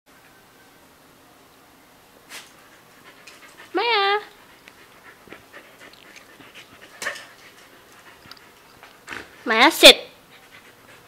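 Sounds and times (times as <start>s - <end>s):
dog panting: 2.5s - 9.5s, 10.1s - 11.0s.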